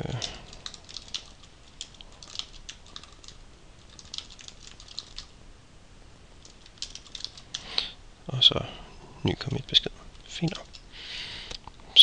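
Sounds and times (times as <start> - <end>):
computer keyboard typing: 0.0 - 5.3, 6.4 - 7.7, 10.4 - 10.9.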